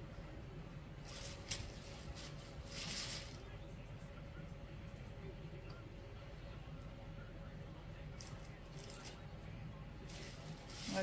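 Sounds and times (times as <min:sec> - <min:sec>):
clothes rustling: 0:01.0 - 0:03.4, 0:10.0 - 0:11.0
shopping bag rustling: 0:01.0 - 0:03.4, 0:10.1 - 0:11.0.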